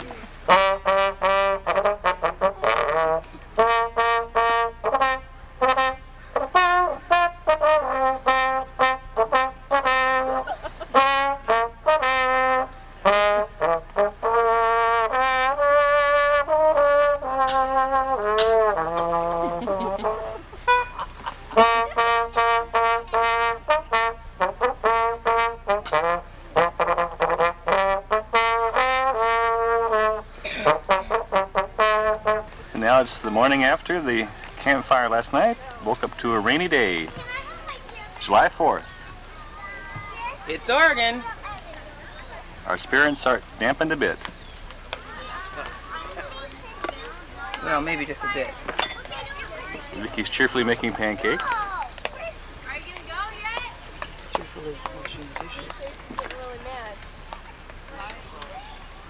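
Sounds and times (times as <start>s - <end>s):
trombone playing lively tune: 0.0s - 37.4s.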